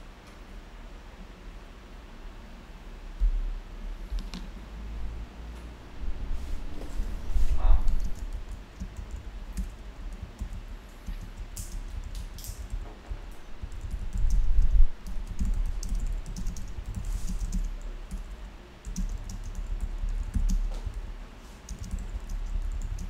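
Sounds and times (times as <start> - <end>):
low rumble: 4.6 - 8.6
computer keyboard typing: 7.6 - 23.0.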